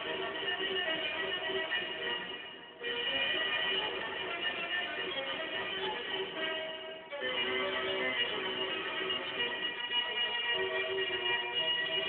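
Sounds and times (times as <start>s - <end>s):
music through radio loudspeaker: 0.0s - 12.0s.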